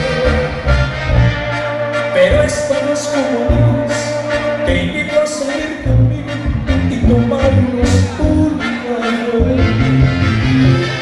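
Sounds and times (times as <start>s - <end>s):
live band playing dance music: 0.0s - 11.0s.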